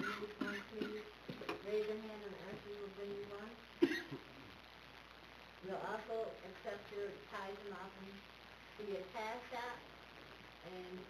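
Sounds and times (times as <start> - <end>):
person clearing throat: 0.0 - 1.1, 3.8 - 4.3.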